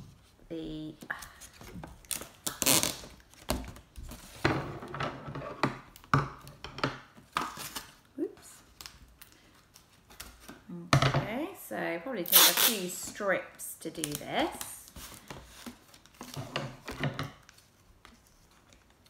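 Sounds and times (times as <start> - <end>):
tape ripping off roll: 2.1 - 3.3, 12.3 - 12.9.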